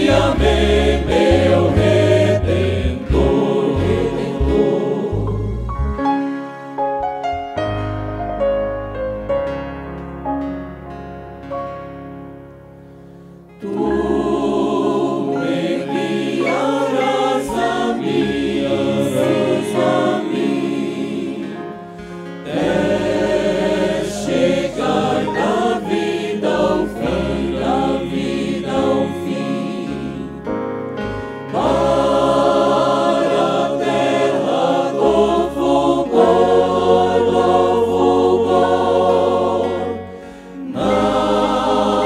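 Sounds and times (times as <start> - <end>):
men's group singing a hymn: 0.0 - 5.7, 13.6 - 30.4, 31.5 - 42.0
choir singing: 0.0 - 6.0, 13.6 - 30.6, 31.4 - 42.0
stage piano: 0.0 - 42.0.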